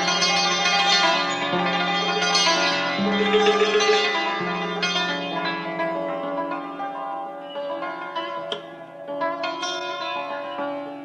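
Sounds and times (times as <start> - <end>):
plucked lute notes: 0.0 - 11.0
sustained low string: 1.3 - 6.5.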